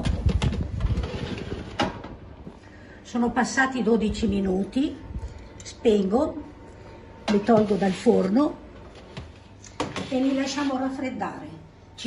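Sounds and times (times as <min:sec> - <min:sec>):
metal baking tray scraping: 0:00.6 - 0:02.0, 0:07.2 - 0:08.5, 0:09.8 - 0:11.2.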